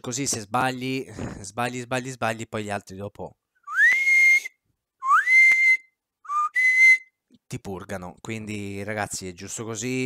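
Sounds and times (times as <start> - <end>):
man whistling: 3.6 - 7.2.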